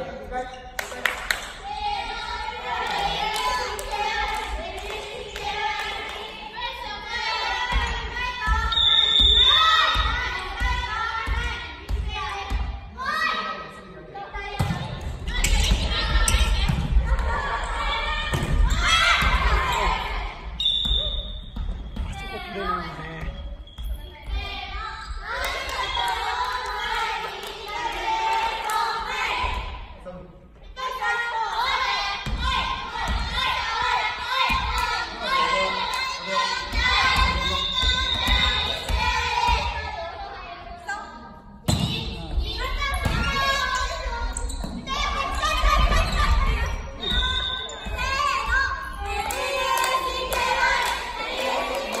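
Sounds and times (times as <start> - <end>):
players shouting in gym: 14.6 - 21.3
volleyball hits: 18.2 - 20.0, 42.9 - 43.6
young voices sing-song shouting: 44.9 - 52.0.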